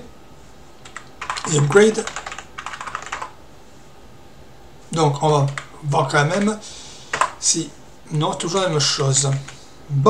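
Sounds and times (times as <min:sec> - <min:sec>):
typing on computer keyboard: 0:00.8 - 0:03.4, 0:05.4 - 0:05.7, 0:06.3 - 0:07.4, 0:09.2 - 0:09.6.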